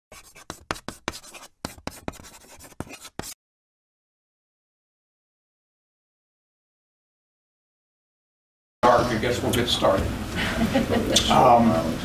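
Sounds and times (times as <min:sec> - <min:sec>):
chalk scratching on chalkboard: 0:00.1 - 0:03.4.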